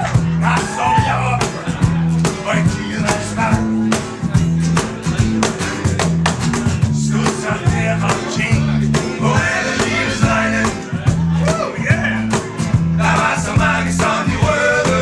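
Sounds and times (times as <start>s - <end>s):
bass line: 0.0s - 15.0s
percussive beat: 0.0s - 15.0s
strummed acoustic guitars: 0.0s - 15.0s
man singing: 0.3s - 4.5s, 6.8s - 15.0s.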